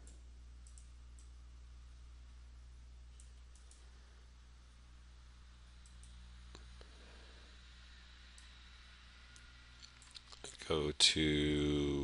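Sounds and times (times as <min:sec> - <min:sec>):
computer mouse clicks: 0:00.0 - 0:01.3, 0:03.2 - 0:03.8, 0:05.8 - 0:06.7, 0:09.3 - 0:10.6
low steady hum: 0:00.0 - 0:12.0.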